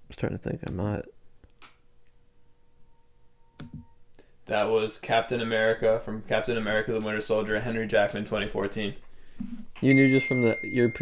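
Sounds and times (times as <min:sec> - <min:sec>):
faint steady tone: 0:02.0 - 0:07.8, 0:08.7 - 0:11.0.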